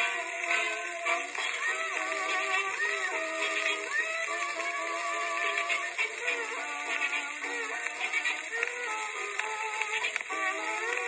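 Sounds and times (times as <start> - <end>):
old dance-band record playing: 0.0 - 11.0.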